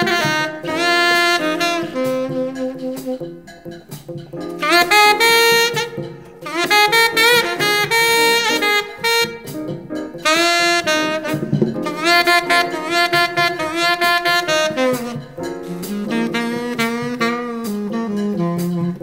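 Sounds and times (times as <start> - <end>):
jazz saxophone melody: 0.0 - 19.0.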